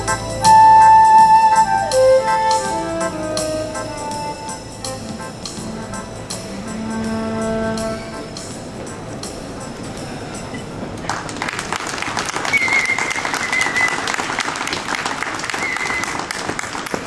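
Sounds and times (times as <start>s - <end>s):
audience applause: 11.0s - 17.0s.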